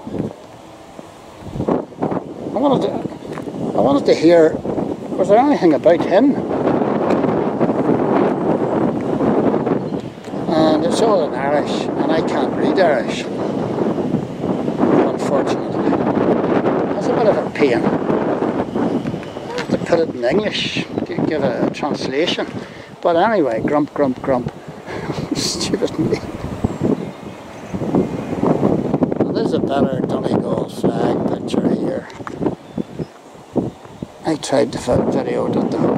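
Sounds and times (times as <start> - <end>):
wind buffeting microphone: 0.0 - 35.9.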